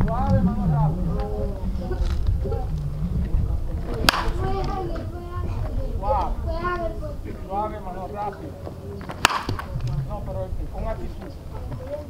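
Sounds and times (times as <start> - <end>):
wooden bat hitting ball: 3.9 - 4.7, 9.0 - 10.0.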